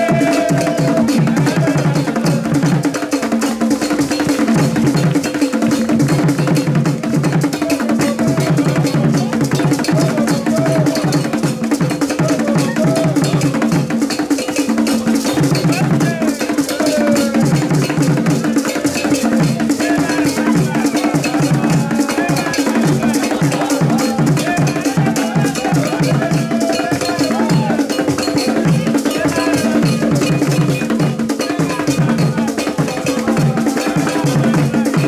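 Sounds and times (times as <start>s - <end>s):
drum ensemble playing dance rhythm: 0.0s - 35.0s.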